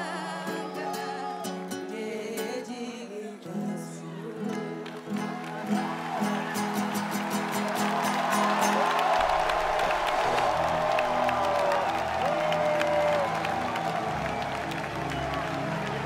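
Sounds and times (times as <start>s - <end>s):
acoustic guitar and shaker music: 0.0s - 11.4s
audience applause and cheering: 4.8s - 16.0s.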